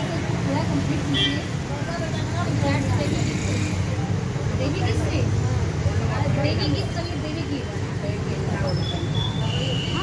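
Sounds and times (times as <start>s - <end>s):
several people talking: 0.0s - 10.0s.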